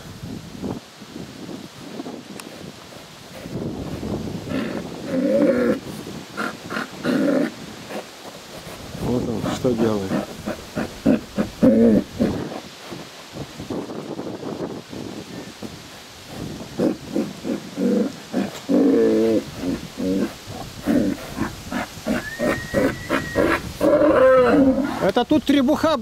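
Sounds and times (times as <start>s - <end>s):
bulls bellowing: 3.4s - 12.6s, 16.3s - 25.0s.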